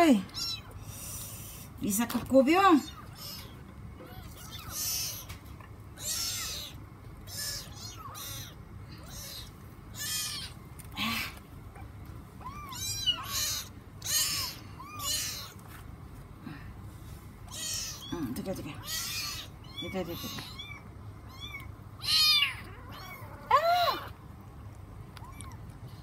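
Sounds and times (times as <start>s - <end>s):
kitten mewing: 2.8s - 5.4s, 6.0s - 15.6s, 17.5s - 24.2s.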